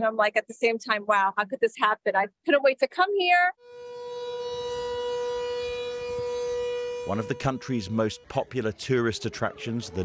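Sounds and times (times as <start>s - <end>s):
warning siren steady tone: 3.6s - 10.0s.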